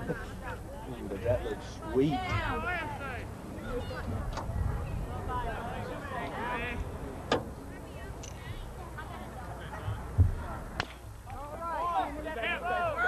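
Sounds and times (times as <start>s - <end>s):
voices shouting: 11.4s - 13.0s.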